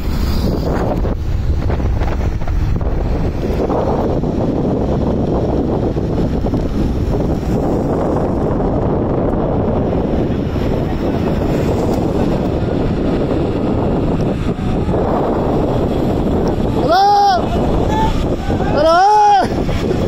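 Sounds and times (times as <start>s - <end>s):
highway traffic passing: 0.0s - 20.0s
wind buffeting microphone: 0.0s - 20.0s.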